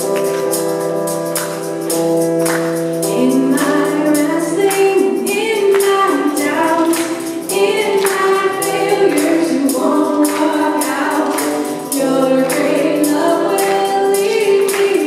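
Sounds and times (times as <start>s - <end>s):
guitar: 0.0s - 15.0s
steady percussive beat: 0.0s - 15.0s
women singing together: 3.1s - 15.0s.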